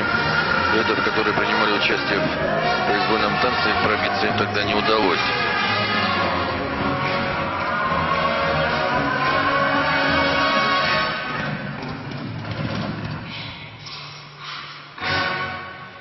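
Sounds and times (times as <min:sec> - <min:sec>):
program music in an arena: 0:00.0 - 0:13.2, 0:13.9 - 0:16.0.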